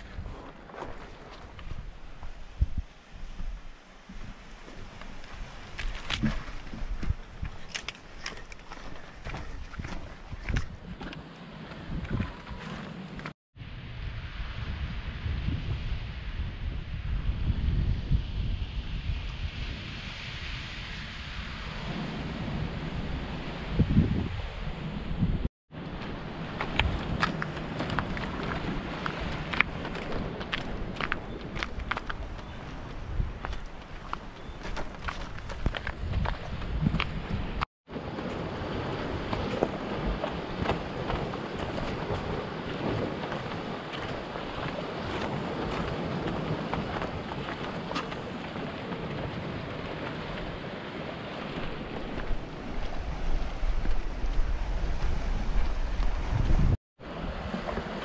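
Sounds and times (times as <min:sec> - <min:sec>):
wind buffeting microphone: 0:00.0 - 0:58.0
surf on rocky shoreline: 0:20.0 - 0:58.0.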